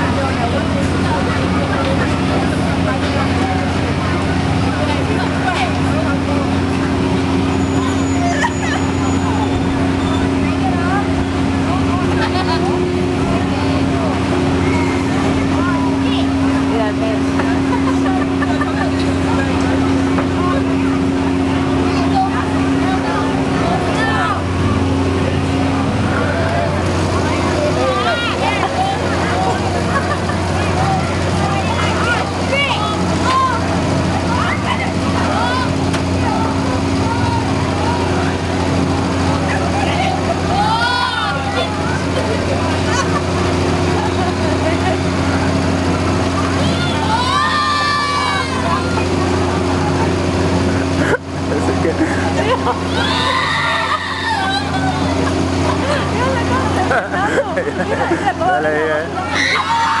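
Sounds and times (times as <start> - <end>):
crowd voices: 0.0 - 60.0
low machine hum of ride: 0.0 - 60.0
riders screaming: 40.5 - 41.7, 46.6 - 48.9, 52.6 - 55.2, 59.2 - 60.0.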